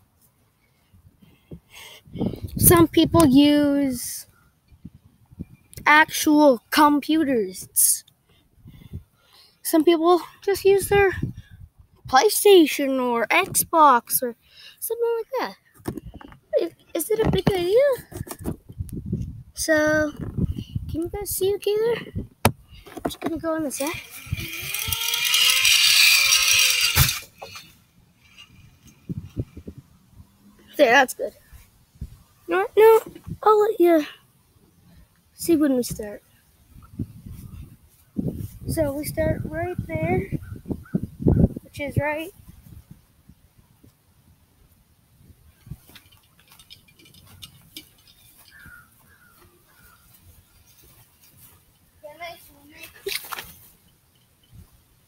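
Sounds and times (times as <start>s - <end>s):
small clicks: 23.8s - 29.0s
pulley whine rising in pitch: 23.9s - 29.6s.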